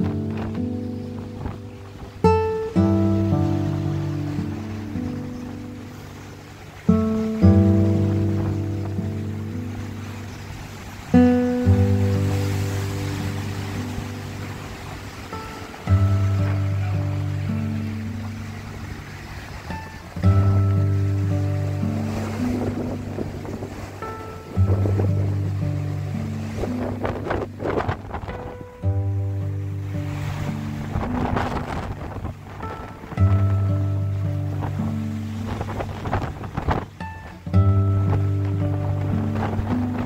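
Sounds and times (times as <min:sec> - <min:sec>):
sea rushing: 0:00.0 - 0:40.0
slow chordal guitar music: 0:00.0 - 0:40.0
wind buffeting microphone: 0:00.0 - 0:40.0.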